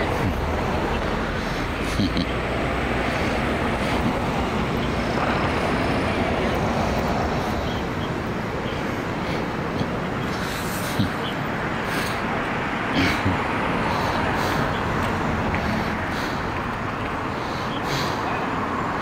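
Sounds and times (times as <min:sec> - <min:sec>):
indistinct voices: 0:00.0 - 0:19.0
steady background noise: 0:00.0 - 0:19.0.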